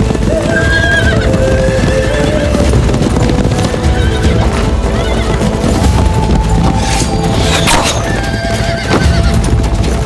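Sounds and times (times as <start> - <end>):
drumming hoofbeats: 0.0 - 10.0
horses neighing: 0.0 - 10.0
soundtrack music with held notes: 0.0 - 10.0.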